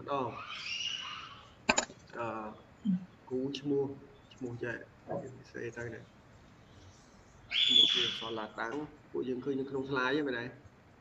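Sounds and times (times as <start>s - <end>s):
high whistling tone: 7.5s - 8.4s.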